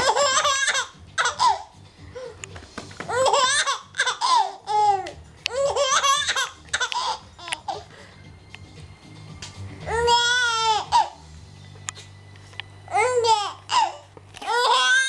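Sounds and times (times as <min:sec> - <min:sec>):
baby giggling: 0:00.0 - 0:02.3, 0:03.1 - 0:07.9, 0:09.9 - 0:11.2.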